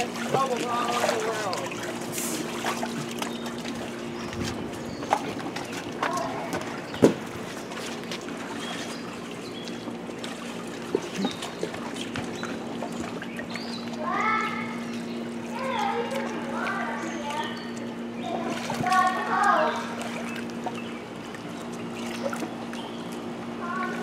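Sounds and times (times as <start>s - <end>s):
steady low hum: 0.0s - 24.0s
water sloshing: 0.0s - 24.0s.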